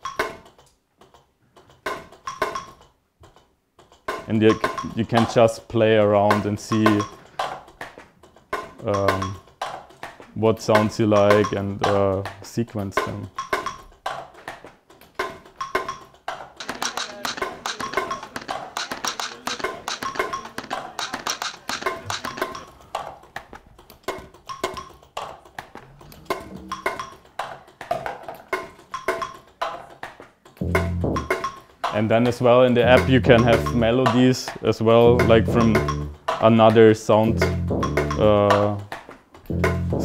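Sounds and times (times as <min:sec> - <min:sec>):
motorized strikers tapping wooden bars: 0:00.0 - 0:05.5, 0:06.2 - 0:10.1, 0:13.2 - 0:32.1.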